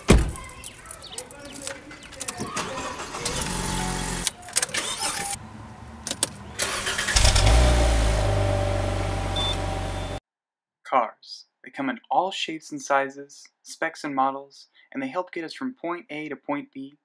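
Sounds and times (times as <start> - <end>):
car engine starting and idling: 2.6 - 5.4, 6.0 - 10.2.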